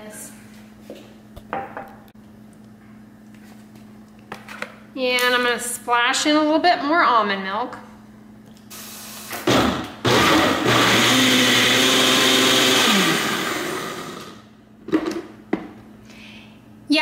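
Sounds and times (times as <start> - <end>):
blender motor whirring: 9.5 - 14.5.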